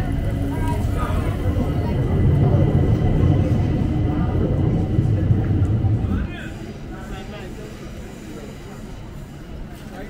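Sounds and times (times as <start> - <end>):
heavy low rumble: 0.0 - 8.3
passers-by talking: 0.0 - 10.0.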